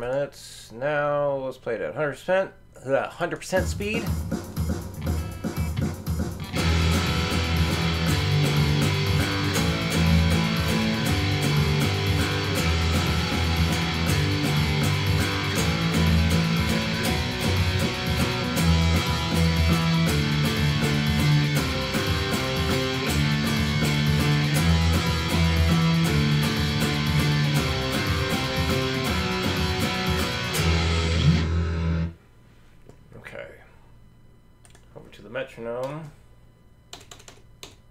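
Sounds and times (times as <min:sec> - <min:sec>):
electric guitar power chord riff: 0:05.0 - 0:32.2.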